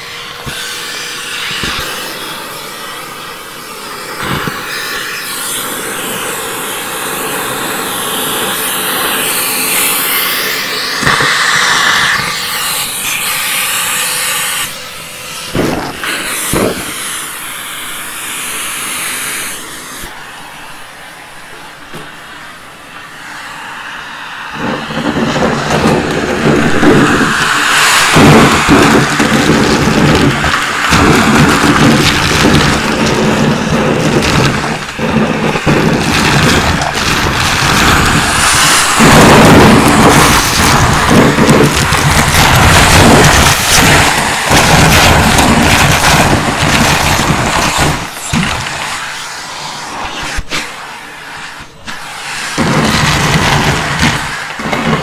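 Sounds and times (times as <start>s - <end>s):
vacuum cleaner running: 0.0s - 55.0s.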